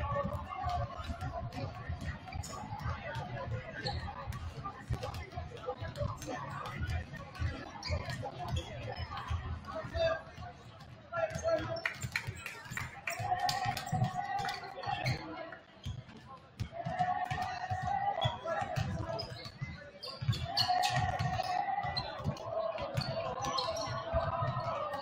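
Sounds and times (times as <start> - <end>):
voices in gym: 0.0 - 25.0
basketballs bouncing on hardwood floor: 16.6 - 25.0.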